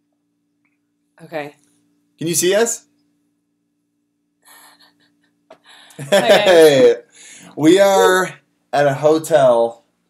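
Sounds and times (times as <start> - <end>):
faint room hum: 0.0 - 10.0
person breathing softly: 7.1 - 7.6.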